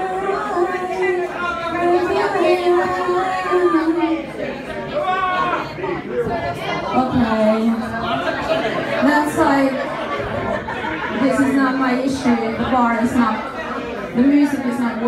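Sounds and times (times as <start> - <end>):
woman singing into microphone: 0.0 - 4.2
people talking: 0.0 - 4.9, 5.6 - 13.6, 14.2 - 15.0.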